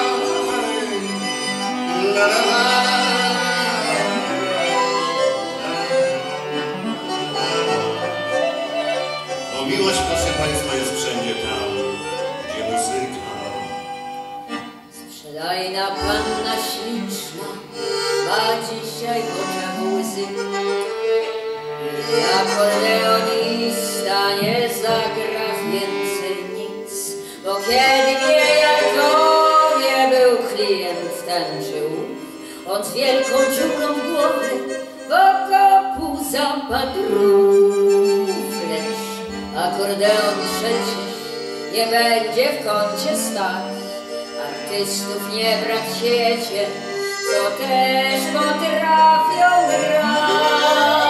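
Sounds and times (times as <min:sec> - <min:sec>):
accordion: 0:00.0 - 0:51.0
violin: 0:00.0 - 0:51.0.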